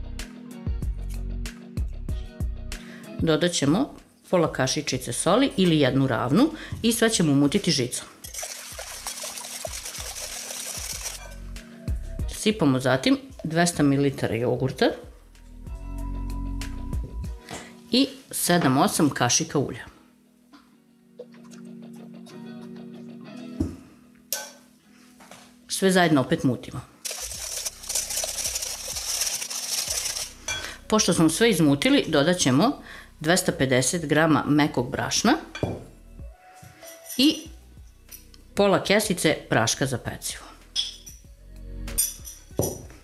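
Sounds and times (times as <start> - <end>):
soft background music: 0.0 - 43.0
whisk beating eggs in glass bowl: 8.3 - 11.4, 27.1 - 30.6.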